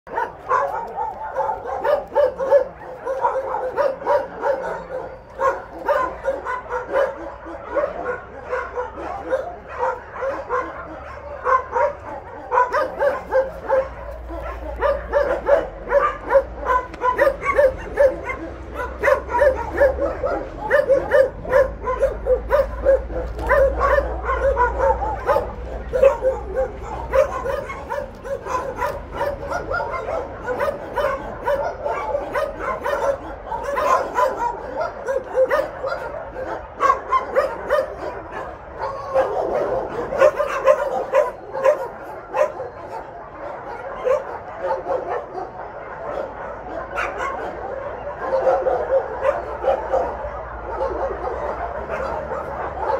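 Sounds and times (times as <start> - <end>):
many dogs barking and yipping: 0.0 - 52.9.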